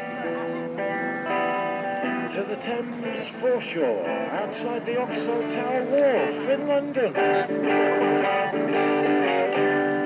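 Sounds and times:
electric guitar strumming chords: 0.0 - 10.0.

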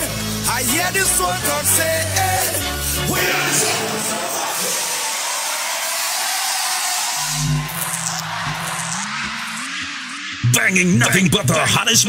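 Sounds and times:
song with bass: 0.0 - 4.2
electronic glides: 7.2 - 10.5.

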